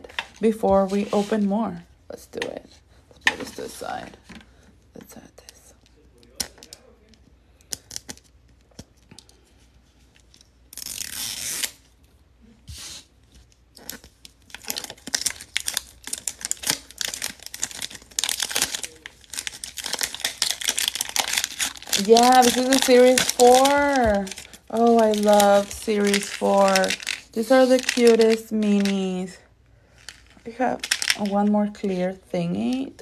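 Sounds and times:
plastic wrapper tearing: 10.3s - 11.9s, 13.7s - 29.3s, 29.9s - 32.0s
plastic crinkling: 13.4s - 33.0s.

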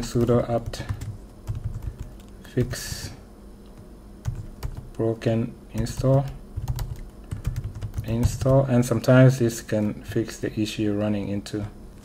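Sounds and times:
computer keyboard typing: 0.0s - 3.0s, 4.2s - 5.0s, 5.8s - 8.7s.

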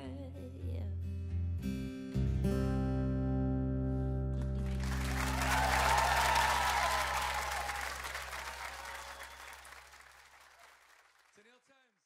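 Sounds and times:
audience applause: 4.6s - 11.6s.

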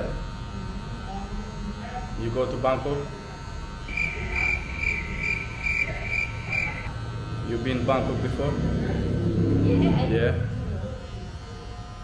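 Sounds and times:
electric hair clippers running: 0.0s - 12.0s.

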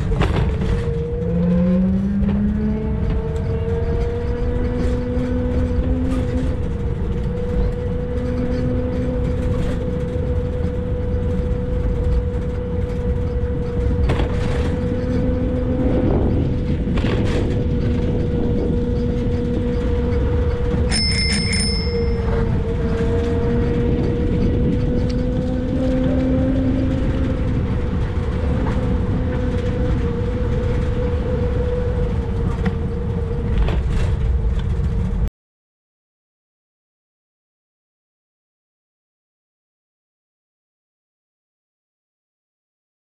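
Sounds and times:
wind and tyres rumbling: 0.0s - 35.3s
bicycle bell ringing: 20.8s - 22.5s.

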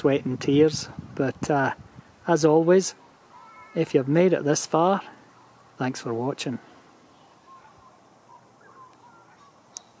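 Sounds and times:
distant birds calling: 1.8s - 10.0s.

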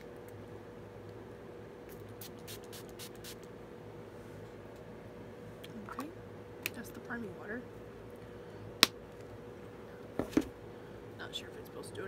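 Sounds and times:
spray bottle spritzing: 1.9s - 3.4s.

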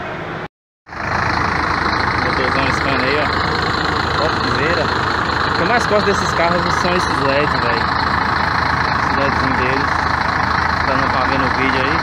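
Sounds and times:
diesel engine idling loudly: 0.9s - 12.0s.

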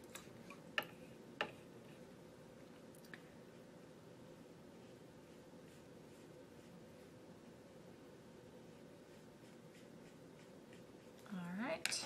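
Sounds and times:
wet paintbrush strokes on paper: 0.1s - 11.5s.

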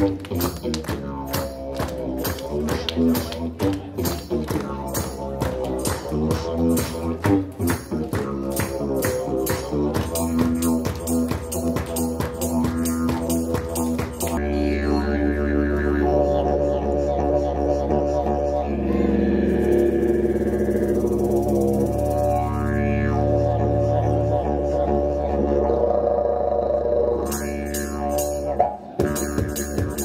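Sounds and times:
didgeridoo drone: 0.0s - 30.0s.

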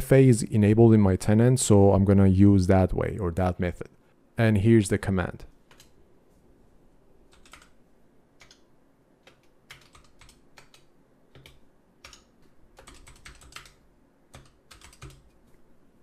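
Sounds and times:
typing on computer keyboard: 5.7s - 6.0s, 7.3s - 7.8s, 8.4s - 8.6s, 9.2s - 15.4s.

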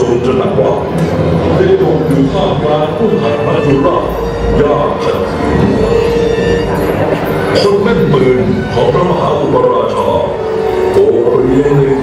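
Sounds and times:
long steady note: 0.0s - 12.0s
man narrating over loudspeakers: 0.0s - 12.0s.

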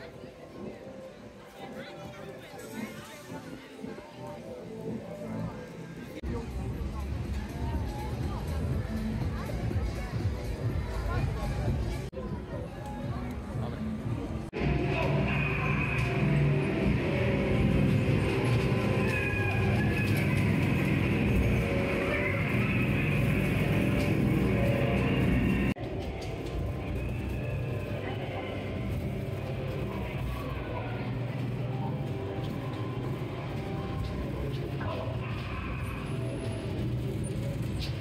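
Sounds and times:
ride car rumbling on track: 13.4s - 38.0s
spooky music and effects: 13.8s - 38.0s.

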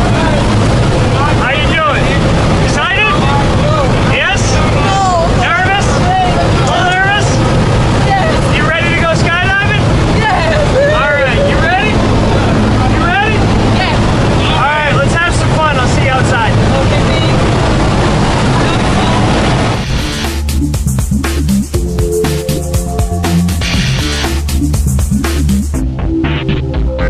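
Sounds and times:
plane engine and propeller drone: 0.0s - 25.5s
people calling out: 10.2s - 12.0s.

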